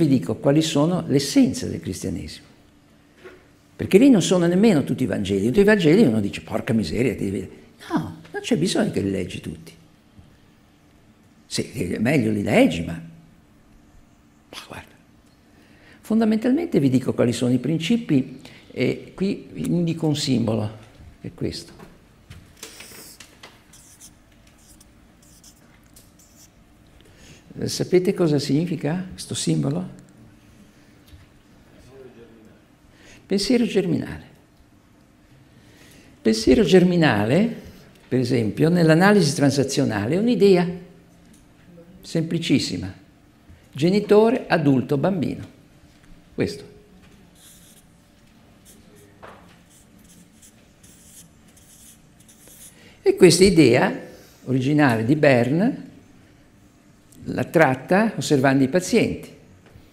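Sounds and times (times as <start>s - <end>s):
marker scratching on paper: 22.6s - 26.6s, 47.4s - 47.9s, 48.6s - 52.8s.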